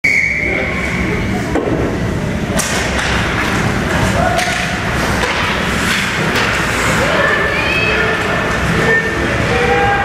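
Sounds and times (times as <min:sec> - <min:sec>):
arena background noise: 0:00.0 - 0:10.0
hockey sticks and puck knocking: 0:04.3 - 0:06.9.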